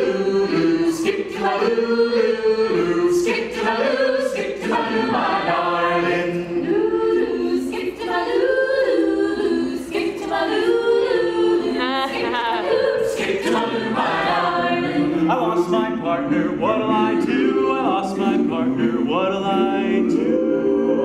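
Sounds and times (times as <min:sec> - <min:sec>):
a cappella group singing in harmony: 0:00.0 - 0:21.0.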